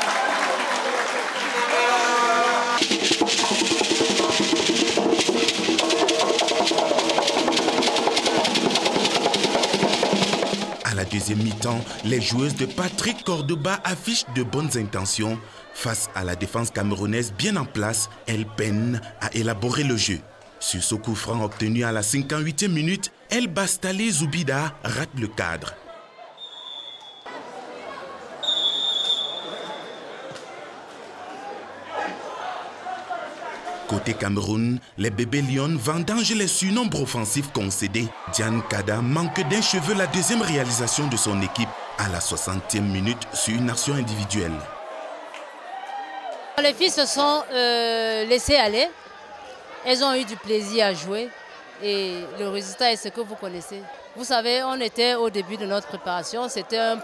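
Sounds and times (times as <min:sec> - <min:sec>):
hubbub of voices: 0:00.0 - 0:26.5, 0:27.3 - 0:45.7, 0:46.4 - 0:57.0
djembe drums played fast: 0:02.8 - 0:13.5
referee's whistle blasts: 0:26.4 - 0:27.3, 0:28.4 - 0:30.0.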